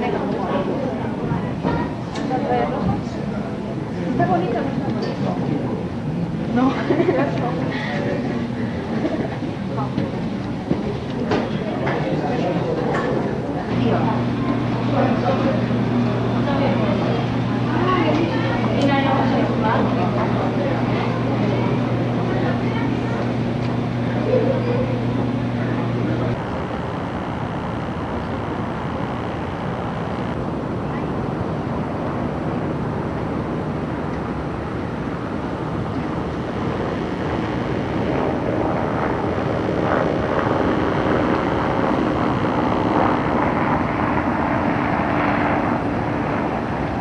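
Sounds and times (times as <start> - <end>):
wind buffeting microphone: 24.9 - 47.0.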